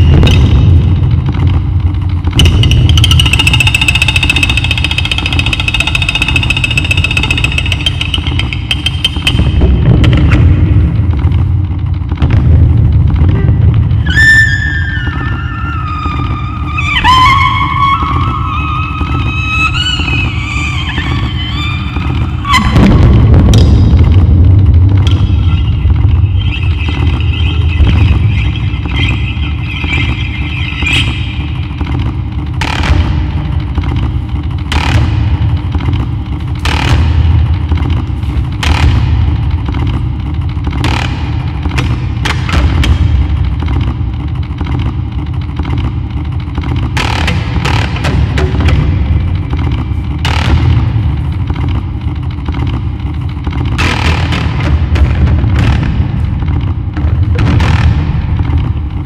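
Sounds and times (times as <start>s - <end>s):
low rumbling drone: 0.0s - 59.0s
wavering high tone: 25.4s - 31.8s.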